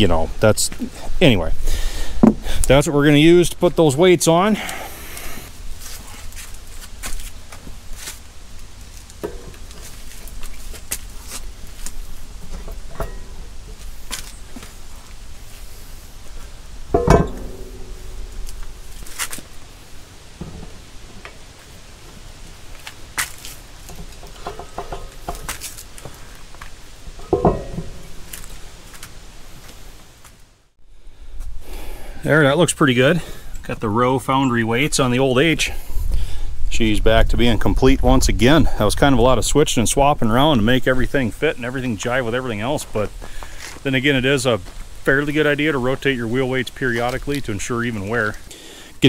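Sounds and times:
heavy metal clanks: 9.2 - 10.0, 12.2 - 13.8, 16.9 - 19.4, 23.9 - 26.2, 27.1 - 28.6
metal weights clinking: 12.4 - 13.8, 16.9 - 18.9, 27.1 - 28.4.

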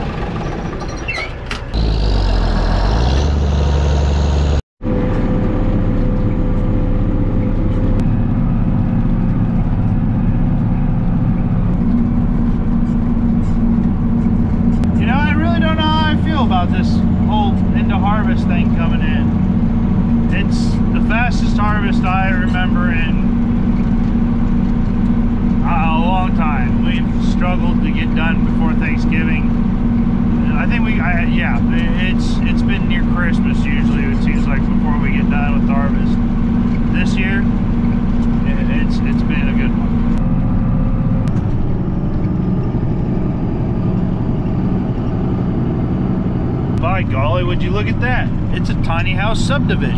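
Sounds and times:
tractor engine under load: 0.0 - 49.9.

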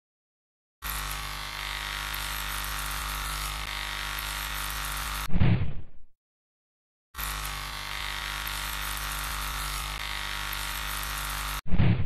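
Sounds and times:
chainsaw engine running: 0.8 - 5.3, 7.2 - 11.6.

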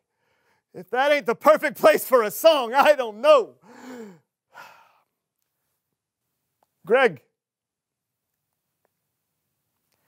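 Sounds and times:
breathy sigh: 3.6 - 5.1.

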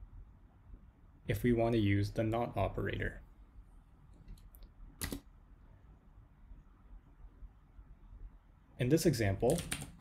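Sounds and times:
keyboard key clicks: 5.0 - 5.3.

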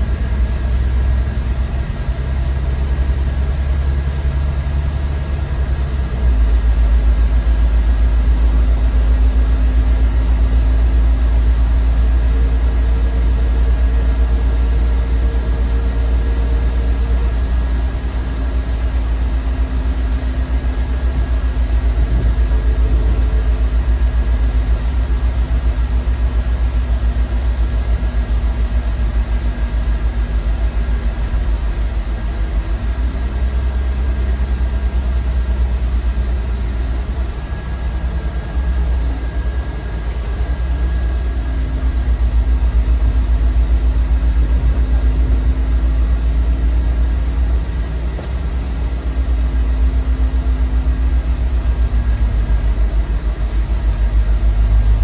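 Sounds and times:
bus engine rumble: 0.0 - 55.0.

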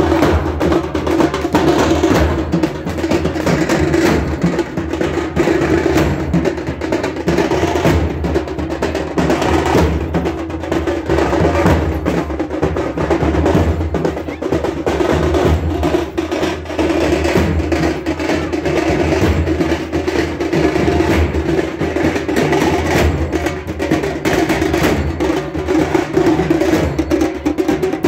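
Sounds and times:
loud rapid drumming: 0.0 - 28.0.

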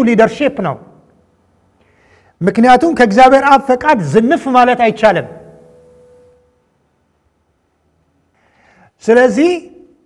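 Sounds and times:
faint steady tone: 5.3 - 8.8.

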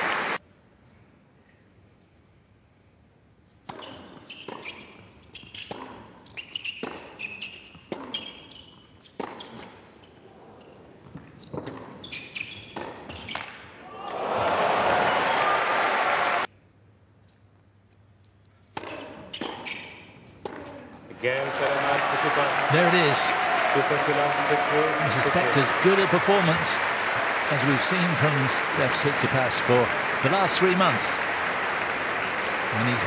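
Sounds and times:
crowd cheering and applause: 0.0 - 0.4, 13.9 - 16.5, 21.1 - 33.0
shoe squeaks: 3.7 - 13.6, 18.8 - 20.9
racket striking ball: 20.4 - 20.7.

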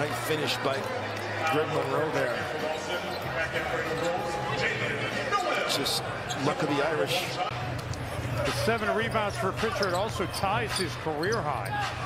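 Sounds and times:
arena crowd noise: 0.0 - 12.0
basketball on-court sounds: 7.6 - 12.0.

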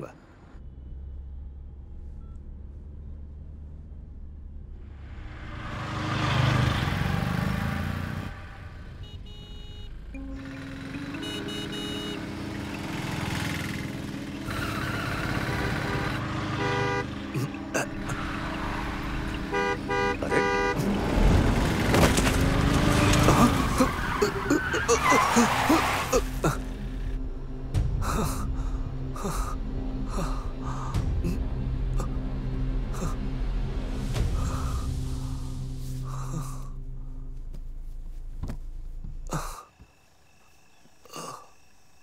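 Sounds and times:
car cabin hum: 37.4 - 39.3.

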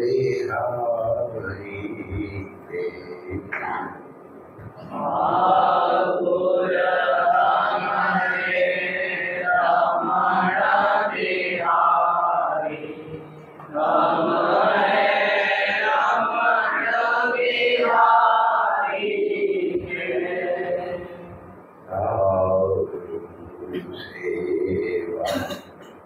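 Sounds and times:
devotional chanting: 0.0 - 26.0.

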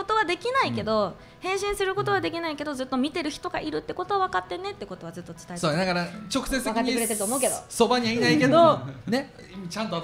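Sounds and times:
woman talking: 6.8 - 7.6.

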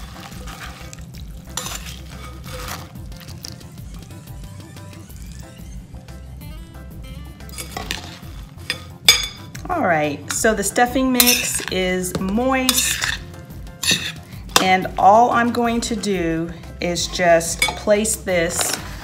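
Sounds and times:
spoon scraping a ceramic bowl: 1.6 - 3.0, 11.2 - 11.8, 12.7 - 14.8, 17.5 - 19.0.

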